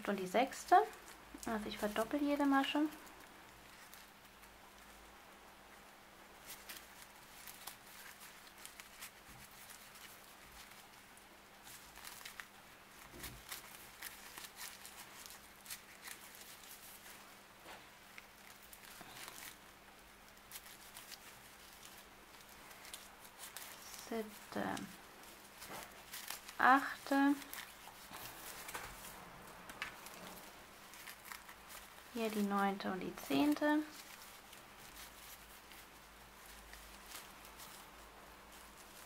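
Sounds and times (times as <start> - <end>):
paper yarn crackling: 0.0 - 39.0.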